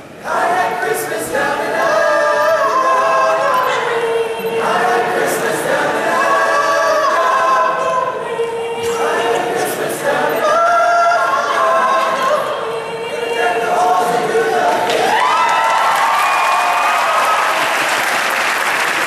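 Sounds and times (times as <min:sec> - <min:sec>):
choir singing a cappella: 0:00.0 - 0:15.2.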